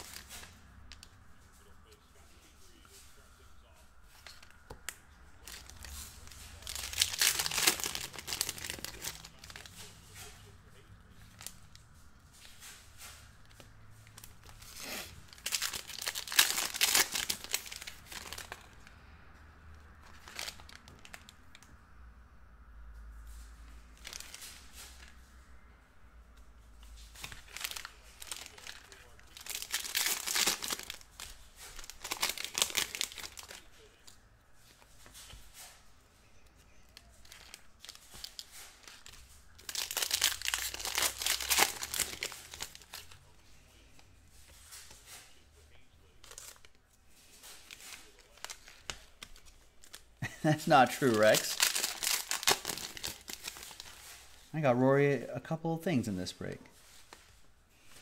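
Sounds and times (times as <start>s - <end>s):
wrappers tearing and crinkling: 0.0s - 1.7s, 4.1s - 18.9s, 19.9s - 21.6s, 23.4s - 25.2s, 26.8s - 35.8s, 36.7s - 43.3s, 43.9s - 54.5s
cards rustling: 0.0s - 19.0s, 19.7s - 21.7s, 23.3s - 25.4s, 26.4s - 54.6s.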